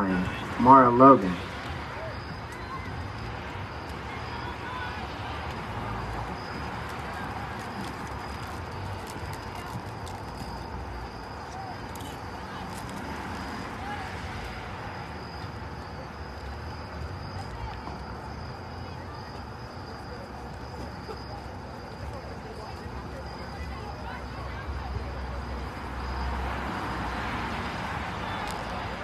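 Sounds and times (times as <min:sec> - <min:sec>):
faint voices calling out: 0:00.0 - 0:29.0
murmur of people talking: 0:00.0 - 0:29.0.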